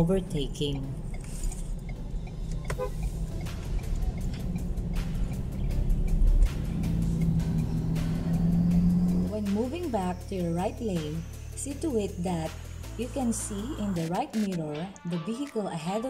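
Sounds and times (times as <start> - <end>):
car rumble on road: 0.0 - 9.9
music with steady beat: 1.1 - 15.6.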